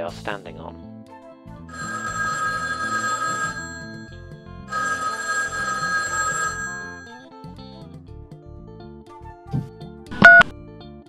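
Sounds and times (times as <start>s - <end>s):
background music: 0.0s - 11.0s
telephone ringing: 1.7s - 7.3s.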